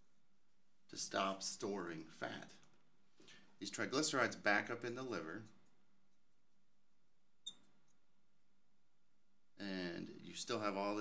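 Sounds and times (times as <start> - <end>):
marker squeaking on glass: 7.4 - 7.8.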